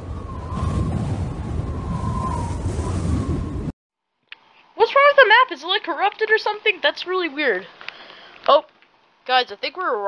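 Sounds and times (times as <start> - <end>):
low rumbling noise: 0.0 - 3.8.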